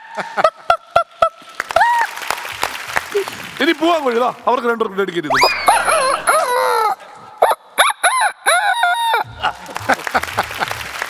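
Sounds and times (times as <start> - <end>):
person imitating chicken calls: 5.3 - 9.3.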